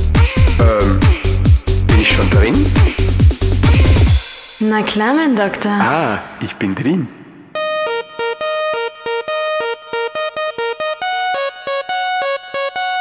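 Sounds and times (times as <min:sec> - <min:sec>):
synthesizer riff: 0:00.2 - 0:05.1, 0:07.5 - 0:13.0.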